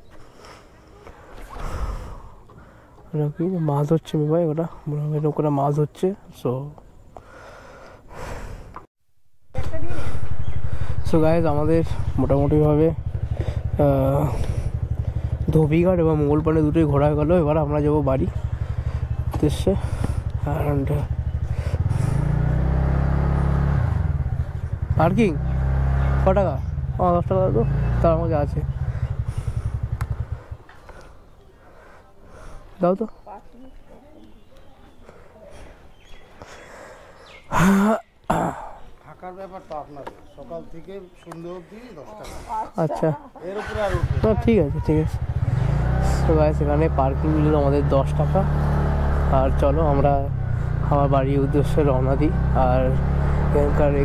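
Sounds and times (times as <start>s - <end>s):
scooter engine idling: 9.6s - 32.5s, 43.4s - 54.0s
man clearing his throat: 37.5s - 38.8s.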